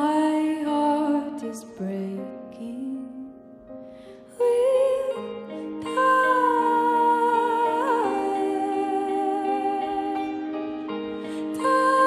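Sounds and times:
sustained piano chords: 0:00.0 - 0:12.0
woman singing long wordless note: 0:04.3 - 0:12.0.

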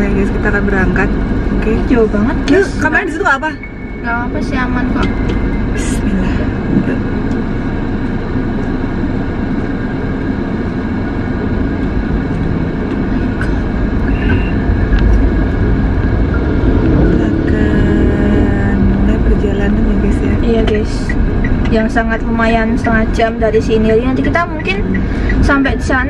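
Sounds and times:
car engine and road rumble: 0:00.0 - 0:26.0.

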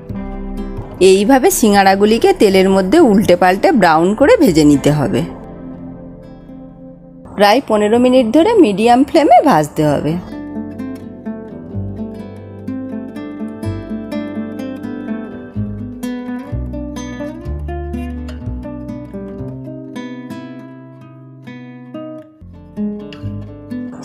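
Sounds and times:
acoustic guitar music: 0:00.0 - 0:24.0.

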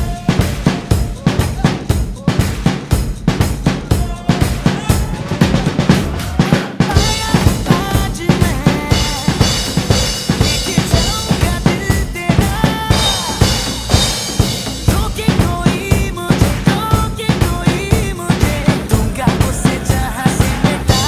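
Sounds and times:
backing track melody: 0:00.0 - 0:21.0
drum kit groove: 0:00.0 - 0:21.0.

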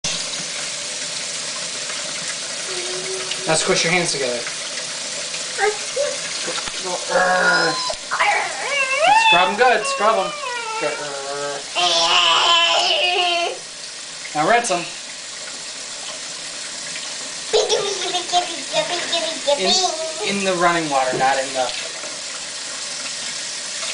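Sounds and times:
person speaking: 0:06.0 - 0:11.8
tap water splashing into steel sink: 0:19.7 - 0:23.9
tap running into metal sink: 0:21.0 - 0:22.3.

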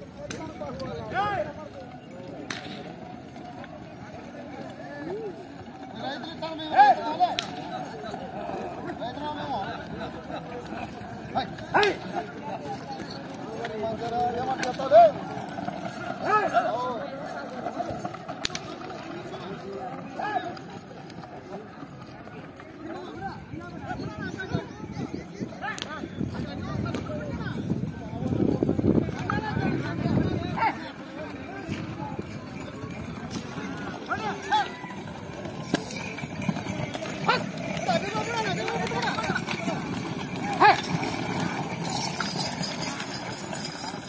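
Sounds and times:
outdoor crowd hubbub: 0:00.0 - 0:44.0
men shouting and calling: 0:06.0 - 0:15.4, 0:16.0 - 0:17.3, 0:29.2 - 0:32.0, 0:33.3 - 0:41.5.

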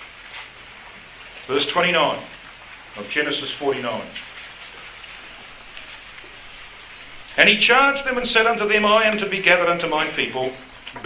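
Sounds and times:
steady hiss of recording noise: 0:00.0 - 0:11.0.

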